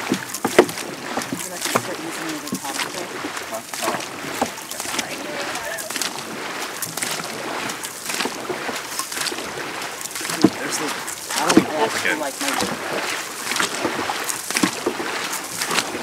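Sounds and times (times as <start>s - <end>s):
paddles splashing in water: 0.0s - 16.0s
water washing along hull: 0.0s - 16.0s.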